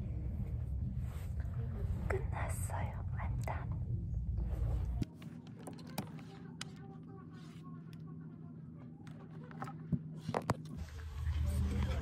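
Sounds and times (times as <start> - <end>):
low rumble: 0.0 - 5.1
woman whispering: 1.4 - 4.0.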